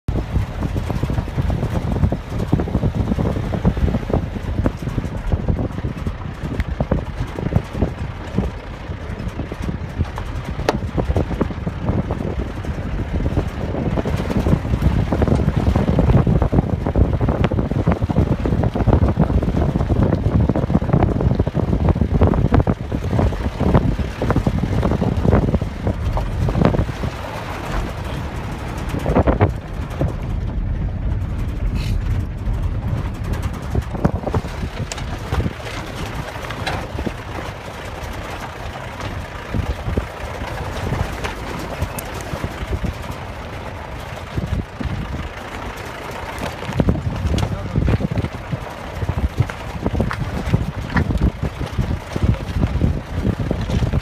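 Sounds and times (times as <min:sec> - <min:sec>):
low gusty rumbling: 0:00.0 - 0:54.0.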